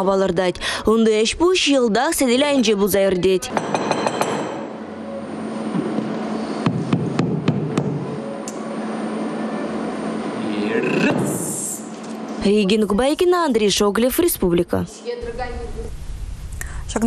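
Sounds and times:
steady background hum: 0:00.0 - 0:17.0.

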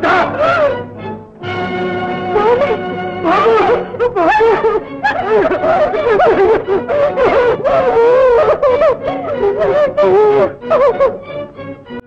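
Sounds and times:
soft film-song accompaniment: 0:00.0 - 0:12.0.

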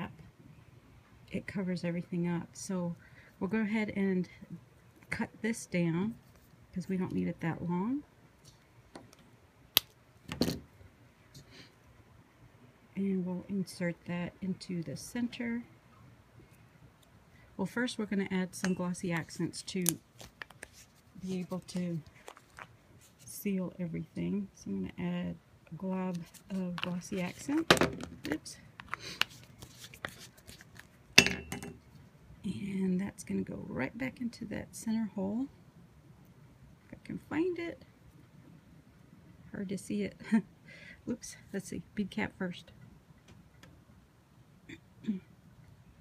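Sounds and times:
hands tapping and rustling craft items: 0:26.1 - 0:30.9.

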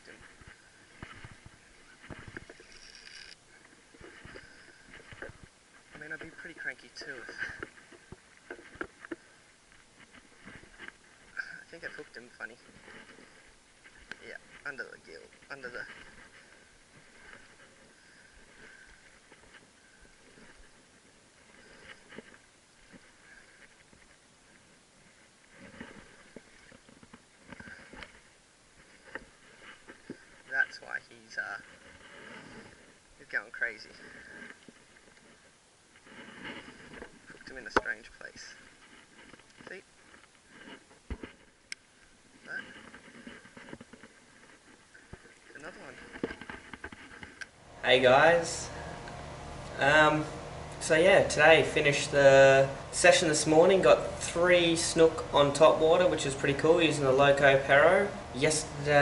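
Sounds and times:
water movement: 0:00.0 - 0:59.0
fishing reel whir: 0:02.4 - 0:03.4.

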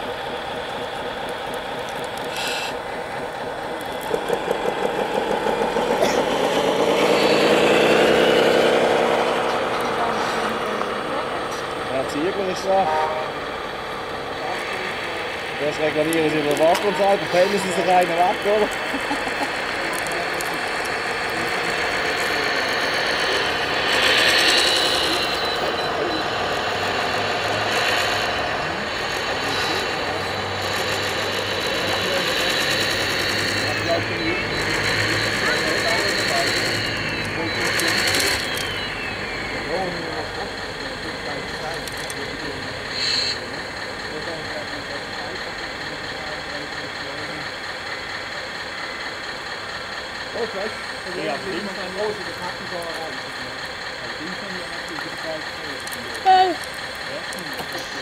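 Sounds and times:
model excavator motor whirring: 0:00.0 - 0:09.9, 0:13.6 - 0:50.8
rising and falling motor whines: 0:00.0 - 0:49.2.

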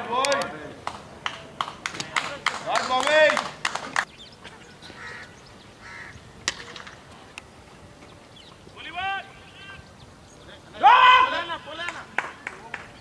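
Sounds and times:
hand claps: 0:00.2 - 0:04.1, 0:11.8 - 0:13.0
players shouting: 0:08.7 - 0:10.0, 0:10.6 - 0:12.8.

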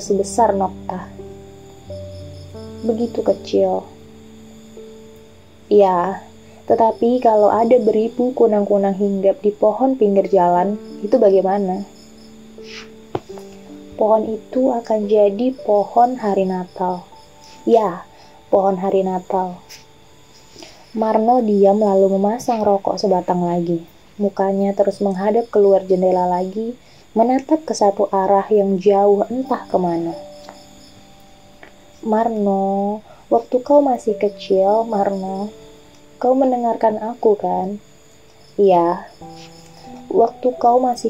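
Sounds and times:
audiobook narration: 0:00.0 - 0:01.2, 0:02.8 - 0:03.9, 0:05.7 - 0:12.0, 0:14.0 - 0:19.9, 0:20.6 - 0:30.4, 0:31.6 - 0:35.6, 0:38.6 - 0:41.0
soft music of low held notes: 0:00.0 - 0:41.0
high chirps: 0:11.9 - 0:14.5.

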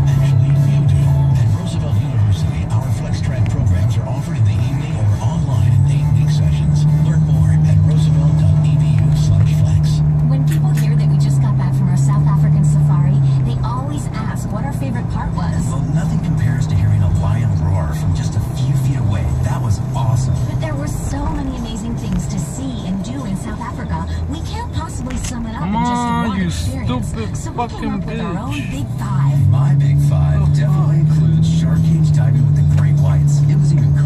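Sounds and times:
car engine and road noise: 0:00.0 - 0:34.0
car radio voice with music: 0:00.0 - 0:34.0.

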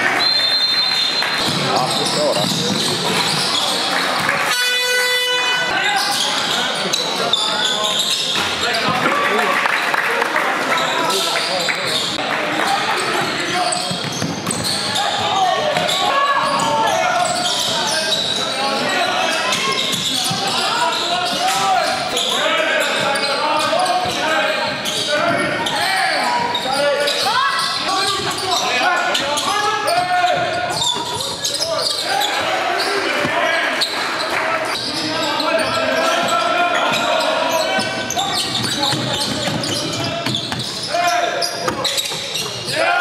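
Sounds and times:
players and spectators voices: 0:00.0 - 0:43.0
basketball bouncing: 0:02.3 - 0:03.4, 0:13.7 - 0:14.8, 0:38.4 - 0:40.8
scoreboard buzzer: 0:04.5 - 0:05.7.

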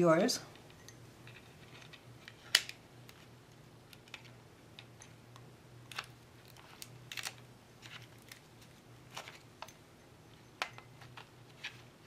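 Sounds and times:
tape unwrapping clicks and taps: 0:03.9 - 0:09.8.

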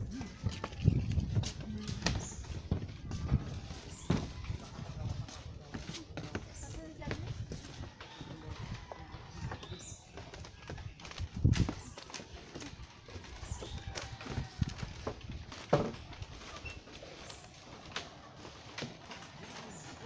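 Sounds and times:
footsteps on wooden boardwalk: 0:00.0 - 0:20.0.

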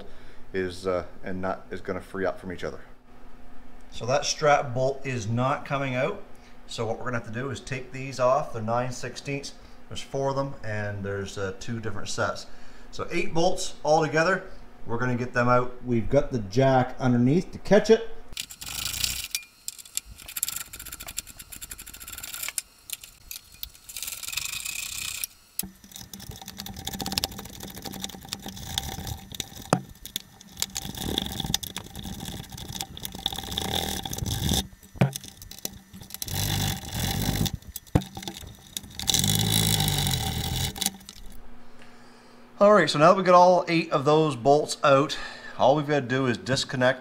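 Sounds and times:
bolts and tools rattling: 0:18.4 - 0:41.4
metal scraping: 0:18.4 - 0:41.4
ratchet wrench clicking: 0:18.4 - 0:41.4.

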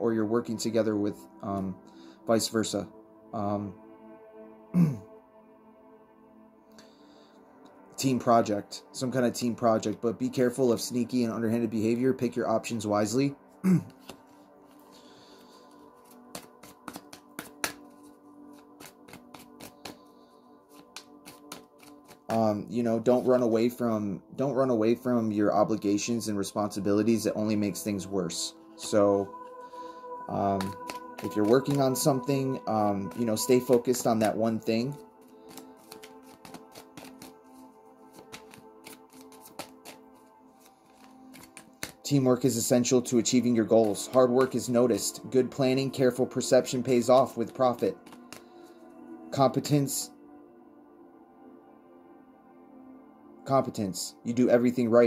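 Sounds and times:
soft background music: 0:00.0 - 0:55.0
cards being shuffled by hand: 0:15.5 - 0:20.1, 0:20.7 - 0:23.4, 0:30.3 - 0:37.4, 0:38.1 - 0:42.7, 0:43.3 - 0:45.1, 0:46.7 - 0:48.5.

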